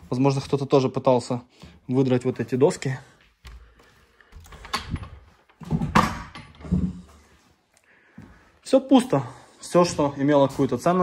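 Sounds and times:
wooden door opening: 0:04.3 - 0:07.1.

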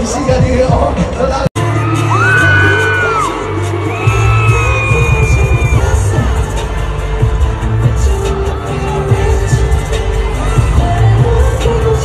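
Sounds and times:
live pop music over loudspeakers: 0:00.0 - 0:12.0
heavy bass beat: 0:00.3 - 0:12.0.

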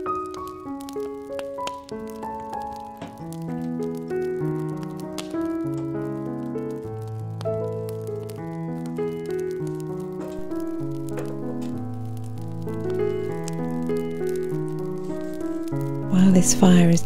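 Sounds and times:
fire crackling in stove: 0:00.0 - 0:17.0.

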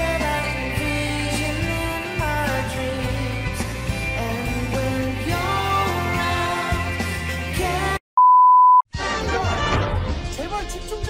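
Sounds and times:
music: 0:00.0 - 0:08.0, 0:08.9 - 0:11.0
test-tone beep: 0:08.2 - 0:08.8.

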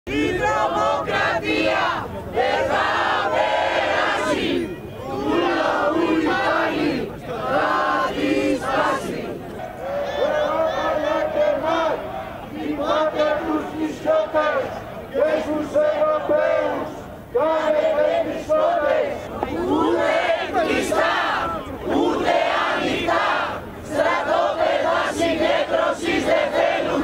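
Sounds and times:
crowd chanting slogans: 0:00.1 - 0:27.0.

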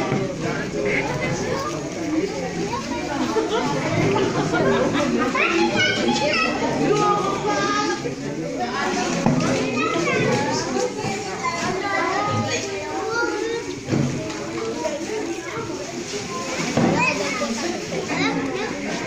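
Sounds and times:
adult chatter: 0:00.0 - 0:19.0
children talking and calling out: 0:00.0 - 0:19.0.

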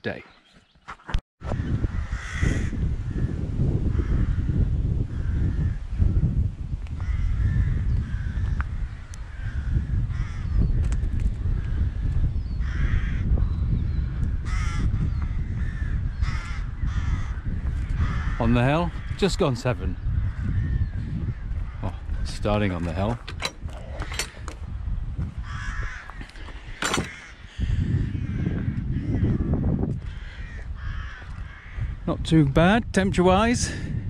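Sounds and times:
wind buffeting microphone: 0:01.4 - 0:34.0
crows cawing: 0:01.5 - 0:05.8, 0:06.9 - 0:10.8, 0:11.5 - 0:13.3, 0:14.3 - 0:23.1, 0:25.4 - 0:32.0.

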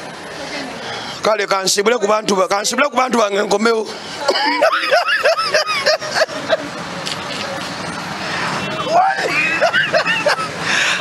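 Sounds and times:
traffic hiss and rumble: 0:00.0 - 0:11.0.

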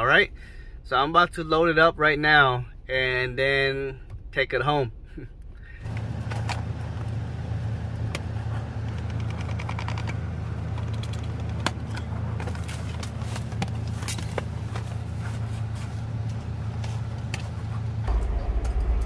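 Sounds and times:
engine idling: 0:05.0 - 0:19.0.

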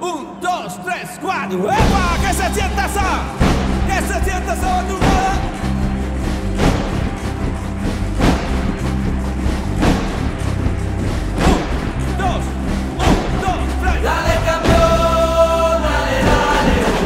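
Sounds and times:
drum kit: 0:01.8 - 0:17.0
electric bass: 0:01.8 - 0:17.0.

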